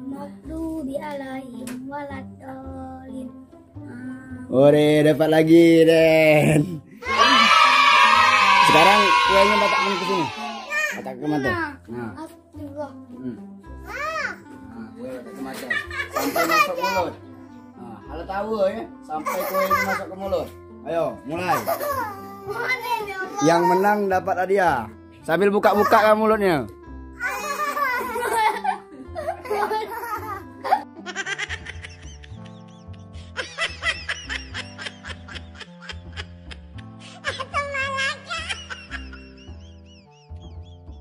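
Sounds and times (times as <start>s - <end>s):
background music: 0.0s - 41.0s
children laughing: 7.0s - 11.0s, 15.4s - 17.2s, 19.2s - 20.2s, 21.5s - 23.6s, 27.2s - 41.0s
children squealing excitedly: 7.0s - 11.0s.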